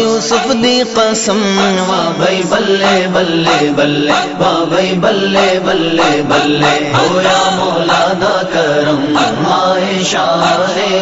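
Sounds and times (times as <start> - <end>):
voices chanting devotional song: 0.0 - 11.0.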